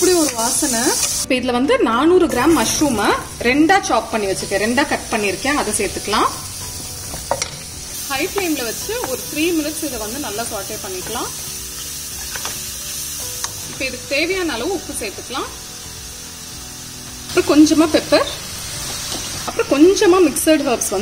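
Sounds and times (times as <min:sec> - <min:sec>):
mushrooms sizzling in a pan: 0:00.0 - 0:01.4, 0:02.3 - 0:21.0.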